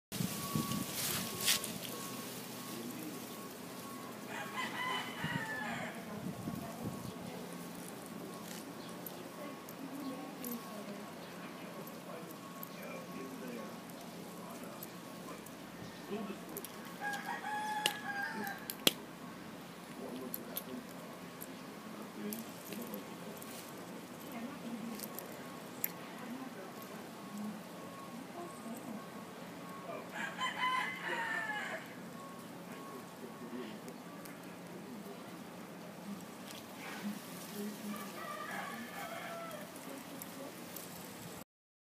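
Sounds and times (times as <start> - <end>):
rooster crowing: 3.9 - 6.2, 15.7 - 18.9, 29.9 - 32.1, 37.8 - 40.0.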